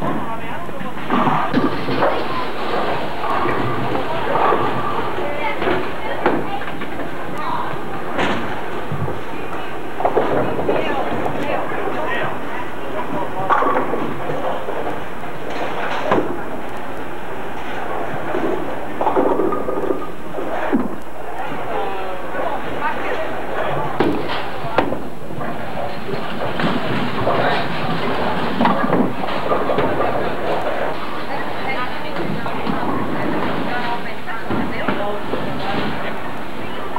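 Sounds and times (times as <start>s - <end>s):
chatter of many voices: 0.0s - 36.9s
bowling balls knocking pins: 0.9s - 11.7s, 18.0s - 21.0s, 23.6s - 31.0s.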